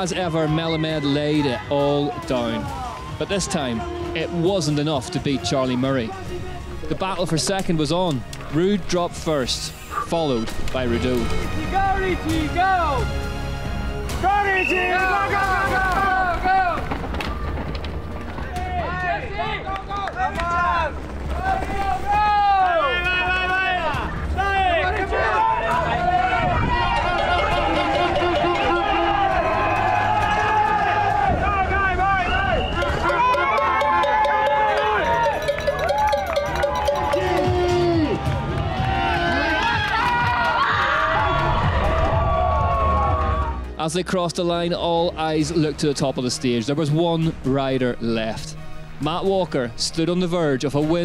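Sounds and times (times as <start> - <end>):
spectators shouting and cheering: 0.0 - 7.2, 14.1 - 43.8
background music: 0.0 - 51.0.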